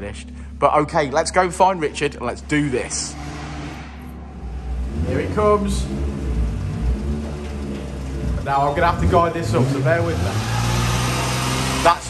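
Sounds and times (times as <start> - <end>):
small engine low rumble: 4.2 - 10.2.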